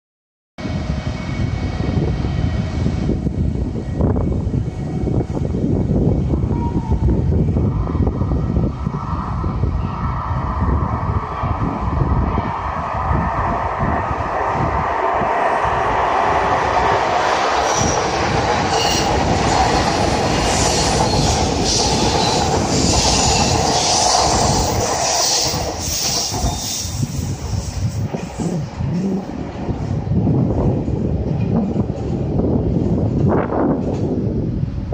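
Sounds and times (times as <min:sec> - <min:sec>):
electric train passing: 0:00.6 - 0:34.9.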